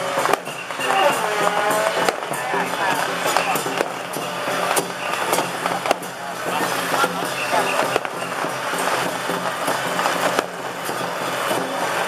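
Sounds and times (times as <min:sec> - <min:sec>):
sharp cracks and bangs: 0:00.0 - 0:12.0
truck engine hum: 0:00.0 - 0:12.0
voices: 0:00.0 - 0:12.0.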